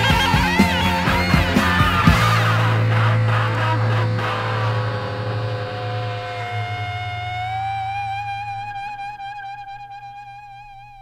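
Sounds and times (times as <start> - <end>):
rock song ending notes: 0.0 - 10.8
low held drone: 0.0 - 11.0.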